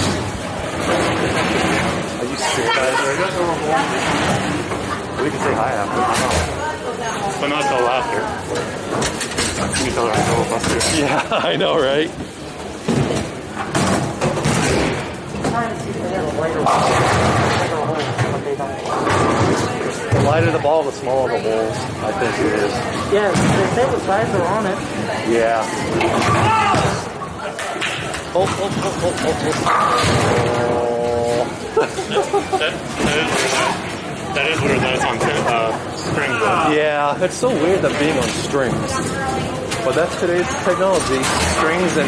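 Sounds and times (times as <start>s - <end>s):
bowling balls and pins clattering: 12.2s - 15.9s, 25.8s - 31.8s
people talking: 26.4s - 42.0s.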